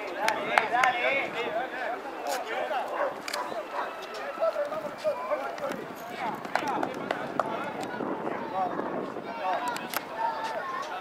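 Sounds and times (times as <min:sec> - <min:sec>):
players and spectators shouting: 0:00.0 - 0:11.0.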